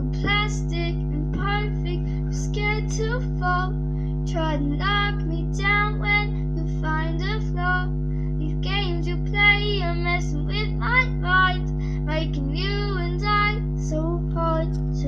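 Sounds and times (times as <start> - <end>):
girl singing pop song: 0.0 - 15.0
steady low hum: 0.0 - 15.0.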